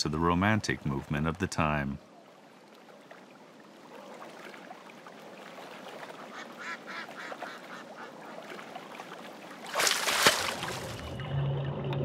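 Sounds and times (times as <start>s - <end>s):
ducks quacking: 6.1s - 8.5s.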